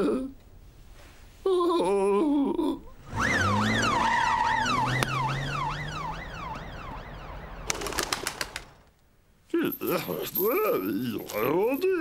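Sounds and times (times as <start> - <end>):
cartoon police siren wailing: 3.1 - 7.7
sharp clicks: 7.6 - 9.0.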